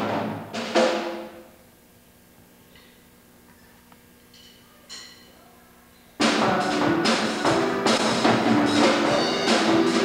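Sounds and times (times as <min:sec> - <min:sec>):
drum kit struck: 0:00.0 - 0:01.5, 0:06.2 - 0:10.0
faint steady hum: 0:00.0 - 0:10.0.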